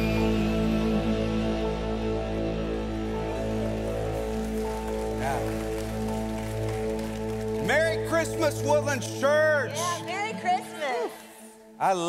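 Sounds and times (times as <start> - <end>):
keyboard pad chords: 0.0 - 10.0
light applause: 2.9 - 9.2.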